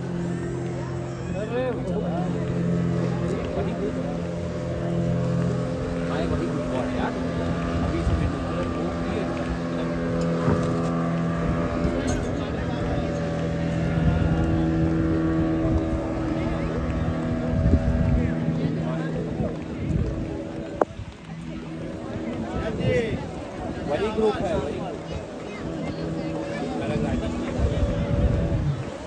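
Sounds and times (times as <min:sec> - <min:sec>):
motorboat engine droning: 0:00.0 - 0:29.0
people talking: 0:00.0 - 0:29.0.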